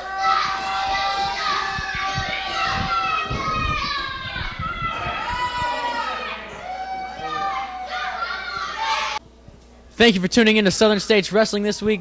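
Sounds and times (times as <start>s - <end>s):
children shouting: 0.0s - 9.2s.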